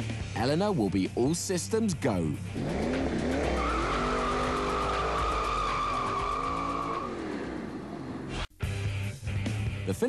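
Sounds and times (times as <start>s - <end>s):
car engine running: 2.4s - 8.4s
tyres squealing: 2.6s - 8.4s.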